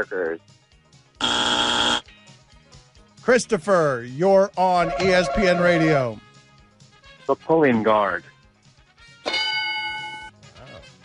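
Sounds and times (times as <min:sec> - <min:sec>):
game show buzzer: 0:01.2 - 0:02.1.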